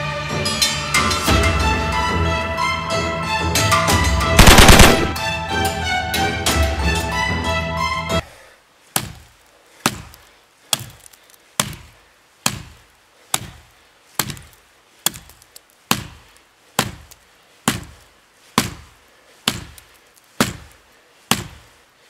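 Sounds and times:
hatchet chopping wood: 8.9s - 21.8s.

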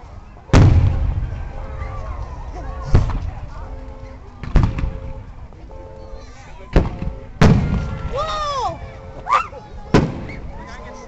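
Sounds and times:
firework shell bang: 0.5s - 1.5s, 4.4s - 5.0s.

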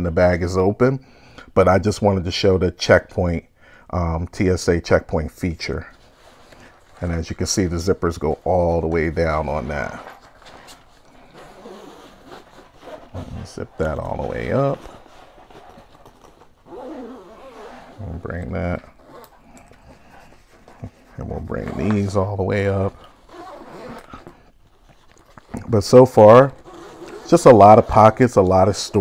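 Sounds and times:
backpack fabric rustling: 5.6s - 29.0s
zipper moving: 5.6s - 29.0s
handling noise: 5.9s - 28.8s.

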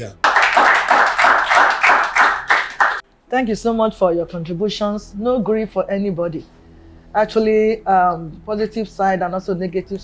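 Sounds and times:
audience clapping: 0.0s - 3.0s.

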